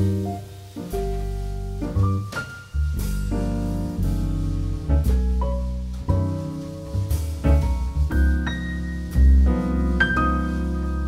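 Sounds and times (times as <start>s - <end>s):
jazz piano chords: 0.0s - 11.0s.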